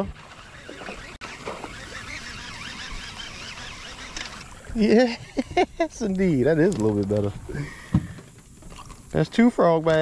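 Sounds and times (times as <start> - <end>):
birds calling and chirping: 0.0 - 5.8
low outdoor background: 0.0 - 10.0.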